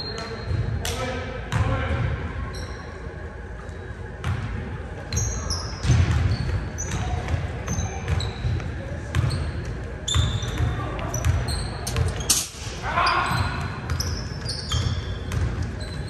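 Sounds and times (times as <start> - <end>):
sneakers squeaking on court: 2.5 - 3.1, 3.7 - 16.0.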